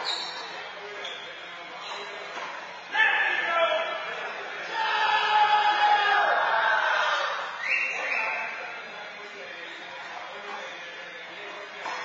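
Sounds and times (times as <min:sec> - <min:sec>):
sneakers squeaking on court: 0:00.0 - 0:02.6.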